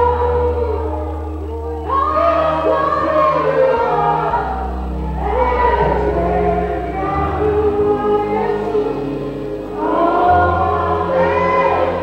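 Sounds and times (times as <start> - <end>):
congregation singing: 0.0 - 12.0
sustained low instrument notes: 0.0 - 12.0.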